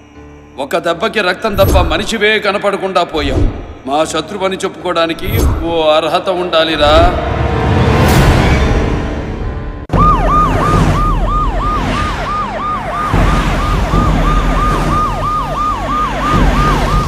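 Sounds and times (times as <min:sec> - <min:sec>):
emergency vehicle siren: 0:09.9 - 0:17.0.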